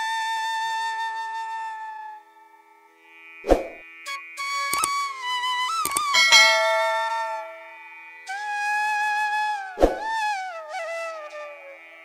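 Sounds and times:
quick clicks: 4.8 - 5.0, 5.8 - 6.2
bell chime ringing: 6.0 - 8.0.

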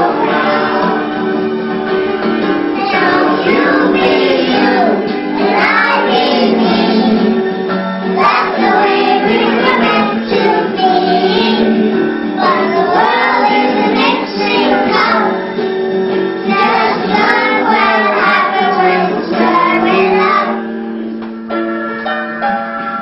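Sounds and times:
children singing: 0.0 - 1.2, 2.8 - 7.4, 8.2 - 15.4, 16.4 - 20.7
instrumental accompaniment: 0.0 - 23.0.

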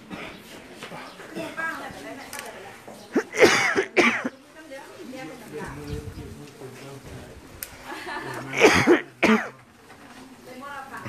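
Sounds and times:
murmur of voices: 0.0 - 11.0
person coughing: 3.2 - 4.3, 8.5 - 9.6.

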